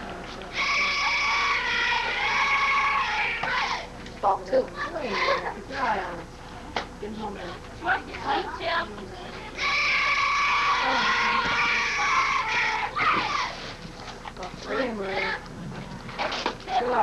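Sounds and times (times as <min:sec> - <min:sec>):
young voices cheering: 0:00.5 - 0:03.9, 0:09.6 - 0:13.6.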